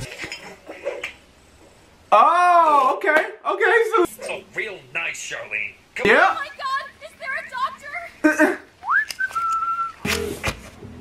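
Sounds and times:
person whistling: 0:08.8 - 0:10.1.

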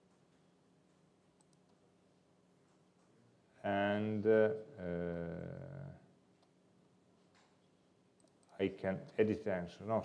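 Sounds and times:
very faint clicks: 0:00.9 - 0:01.8, 0:08.2 - 0:08.6.

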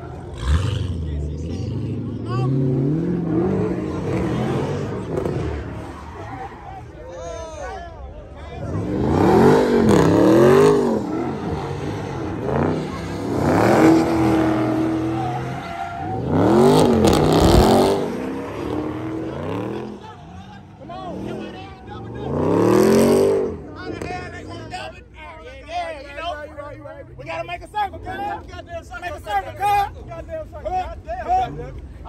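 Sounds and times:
car engines revving hard: 0:00.0 - 0:07.0, 0:08.5 - 0:24.9
tyres spinning on asphalt: 0:00.0 - 0:07.7, 0:08.3 - 0:24.9.

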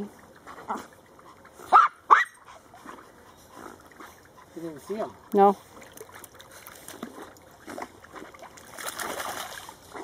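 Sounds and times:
dog barking: 0:01.7 - 0:02.4.

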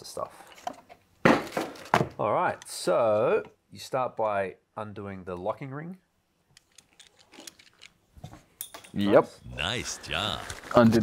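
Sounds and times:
locking ring unscrewing clicks: 0:06.5 - 0:08.0.

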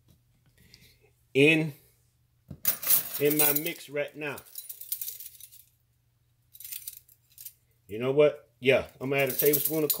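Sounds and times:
metal measuring spoons jingling: 0:02.7 - 0:05.7, 0:09.0 - 0:10.0.

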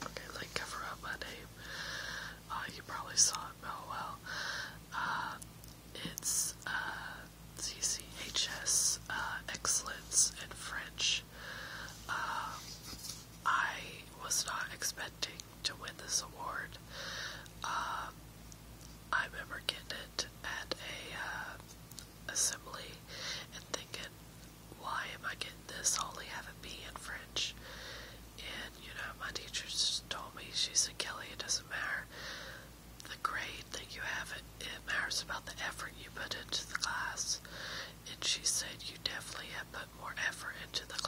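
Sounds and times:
woman whispering: 0:00.0 - 0:01.7, 0:02.4 - 0:04.3, 0:04.9 - 0:11.4, 0:12.0 - 0:12.8, 0:13.4 - 0:16.8, 0:17.6 - 0:18.2, 0:19.1 - 0:21.6, 0:22.3 - 0:24.1, 0:24.8 - 0:27.6, 0:28.4 - 0:32.1, 0:33.0 - 0:41.0
faint low hum: 0:00.0 - 0:41.0.

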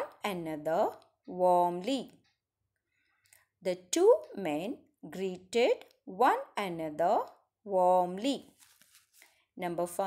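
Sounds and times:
woman speaking: 0:00.0 - 0:02.2, 0:03.6 - 0:08.5, 0:09.6 - 0:10.0.

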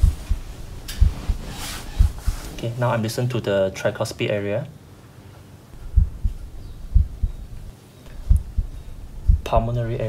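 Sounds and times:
heartbeat through a stethoscope: 0:00.0 - 0:02.6, 0:05.8 - 0:09.8.

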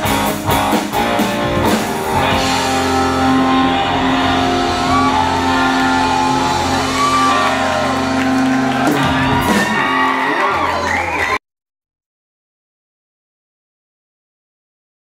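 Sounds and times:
rock band holding chord: 0:00.0 - 0:10.8
crowd whooping and shouting: 0:01.6 - 0:11.4.

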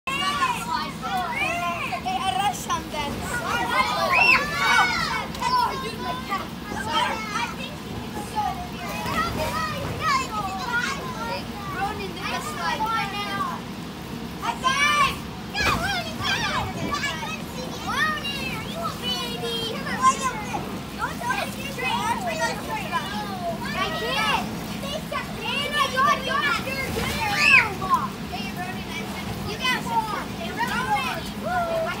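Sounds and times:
children chattering and squealing: 0:00.1 - 0:32.0.

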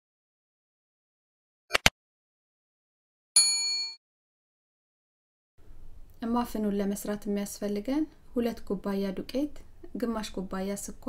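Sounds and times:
notification bell ding: 0:03.4 - 0:04.0.

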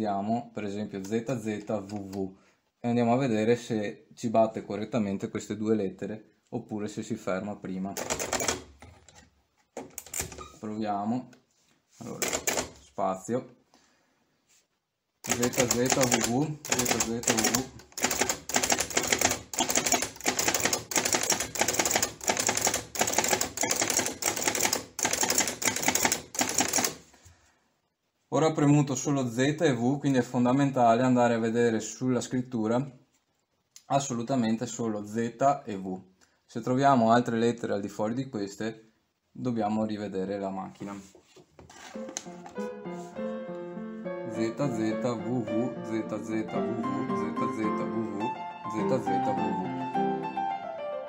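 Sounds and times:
typewriter keys striking: 0:08.0 - 0:08.7, 0:12.2 - 0:12.8, 0:15.3 - 0:27.0
background music: 0:42.0 - 0:51.0.

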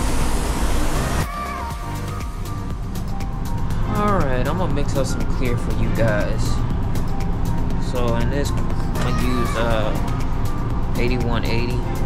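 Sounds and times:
ventilation airflow rushing: 0:00.0 - 0:01.3, 0:02.0 - 0:12.0
background music: 0:00.0 - 0:12.0.

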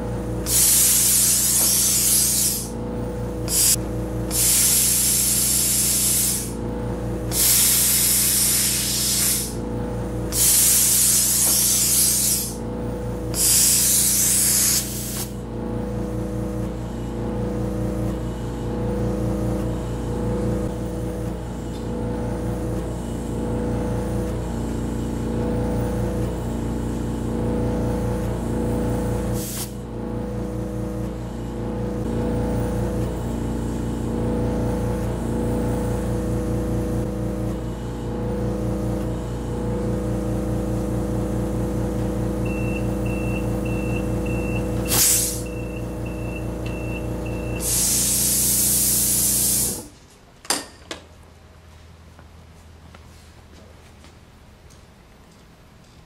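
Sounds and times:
air compressor running: 0:00.0 - 0:50.0
loud hiss of air: 0:00.4 - 0:02.8, 0:03.4 - 0:06.6, 0:07.3 - 0:09.6, 0:10.3 - 0:12.6, 0:13.3 - 0:15.4, 0:29.4 - 0:29.8, 0:44.9 - 0:45.5, 0:47.6 - 0:49.9.

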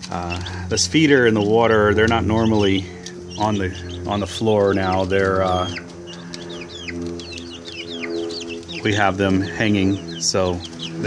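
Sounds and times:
chicks peeping: 0:00.0 - 0:11.0
low steady hum: 0:00.0 - 0:11.0.

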